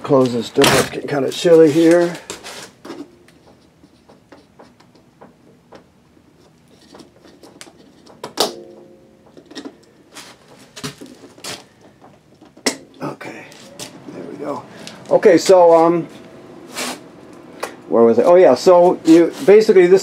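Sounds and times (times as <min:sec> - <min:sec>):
metallic ring: 0:08.5 - 0:09.7.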